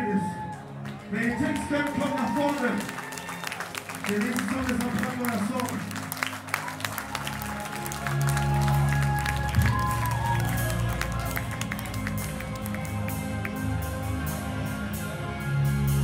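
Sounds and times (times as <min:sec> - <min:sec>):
audience clapping along: 0:00.0 - 0:14.4.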